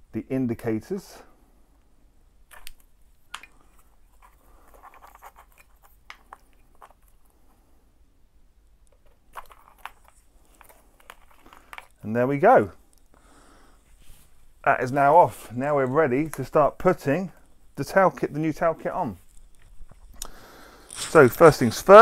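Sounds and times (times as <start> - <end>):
plastic plugs and wires rustling: 2.4 - 7.6, 8.6 - 13.2, 13.8 - 22.0.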